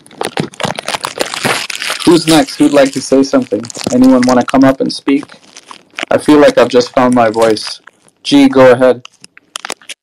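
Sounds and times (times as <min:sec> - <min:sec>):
crackling and rustling: 0:00.0 - 0:10.0.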